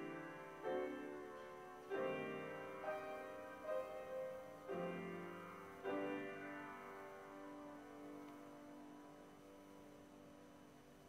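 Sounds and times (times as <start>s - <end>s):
slow quiet piano music: 0.0s - 11.0s.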